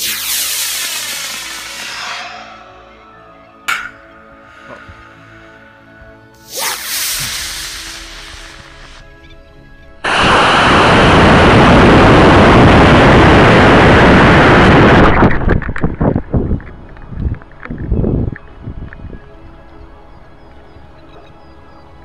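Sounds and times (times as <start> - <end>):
rocket motor exhaust rush: 0.0 - 3.0, 6.5 - 9.0, 10.0 - 15.4
whoosh: 0.0 - 3.8, 6.4 - 9.0.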